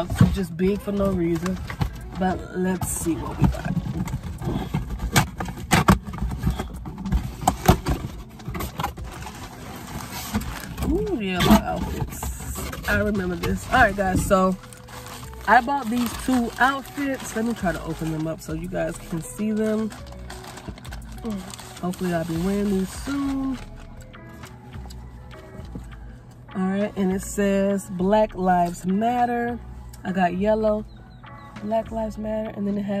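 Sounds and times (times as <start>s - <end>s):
cardboard box being opened: 0.0s - 18.3s, 19.0s - 23.9s
plastic bag crinkling: 0.0s - 24.2s.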